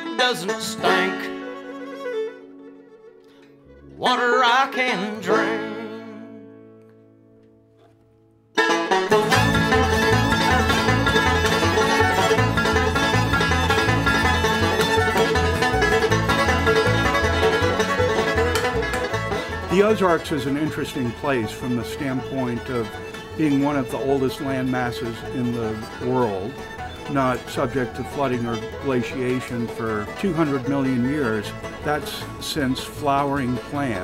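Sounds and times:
slow sliding melodic phrases: 8.6s - 34.0s.

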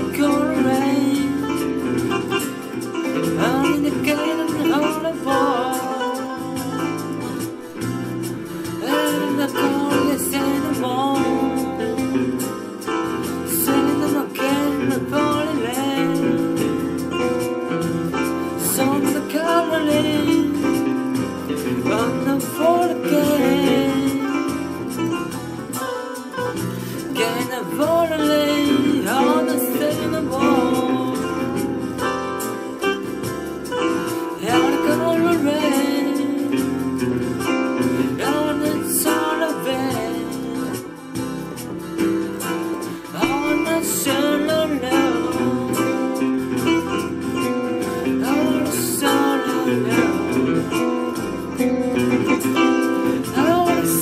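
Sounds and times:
song with instrumental backing: 0.0s - 54.0s.

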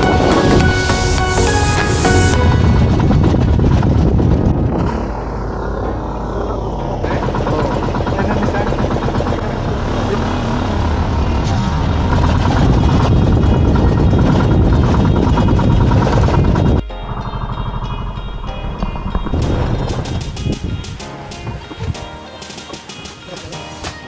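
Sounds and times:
background music: 0.0s - 3.8s, 13.6s - 24.0s
boat engine running: 0.0s - 23.8s.

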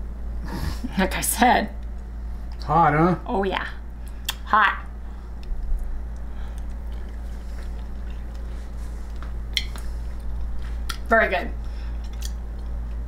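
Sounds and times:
low electrical hum: 0.0s - 13.0s
person chewing food: 5.2s - 13.0s.

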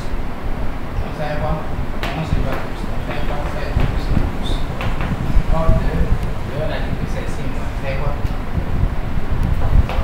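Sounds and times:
loud steady low rumble: 0.0s - 10.0s
man speaking: 1.0s - 4.7s, 5.4s - 8.4s.

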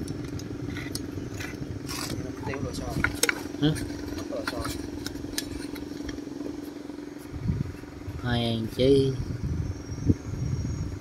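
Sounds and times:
grass trimmer engine idling: 0.0s - 8.3s.

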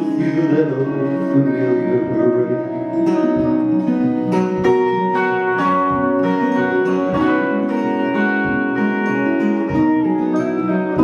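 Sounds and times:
acoustic guitar: 0.0s - 11.0s
electric guitar: 0.0s - 11.0s.

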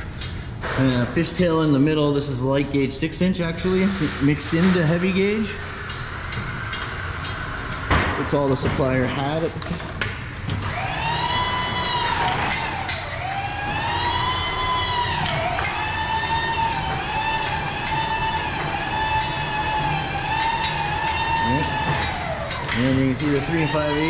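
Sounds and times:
power drill motor whining: 10.5s - 24.0s.

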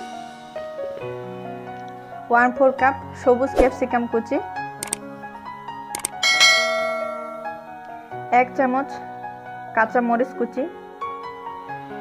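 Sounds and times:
soft background music: 0.0s - 12.0s
sharp click: 4.8s - 5.0s, 6.0s - 6.2s
bell chime: 6.2s - 8.1s.

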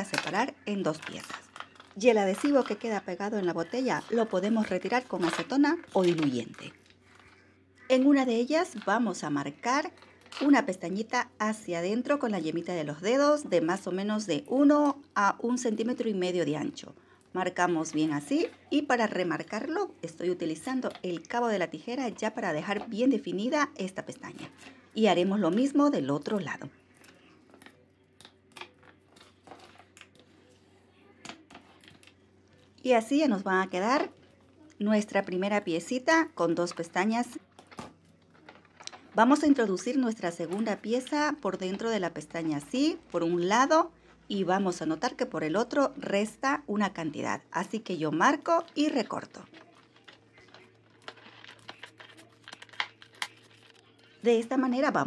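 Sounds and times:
thin plastic crinkling and clicking: 0.0s - 11.3s, 12.0s - 44.4s, 45.0s - 55.0s
scissors snipping plastic: 48.7s - 53.9s.

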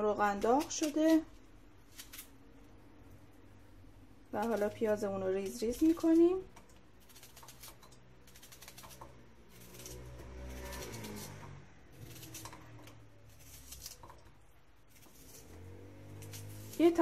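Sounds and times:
knife slicing onion: 0.0s - 2.4s, 4.3s - 17.0s.

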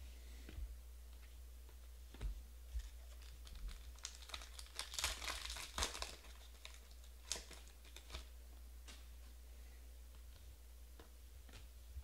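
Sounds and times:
plastic wrapper crinkling: 2.8s - 8.3s.

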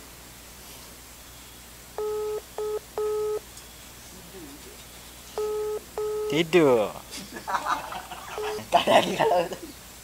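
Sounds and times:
telephone ringback tone: 2.0s - 3.4s, 5.4s - 6.4s, 8.4s - 8.6s.

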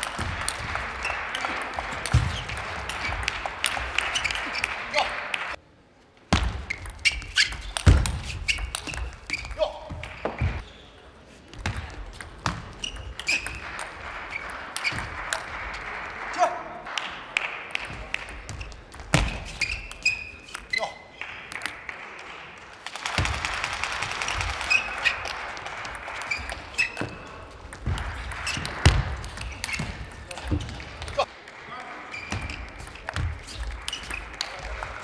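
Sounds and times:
table tennis ball hits: 11.6s - 15.2s.

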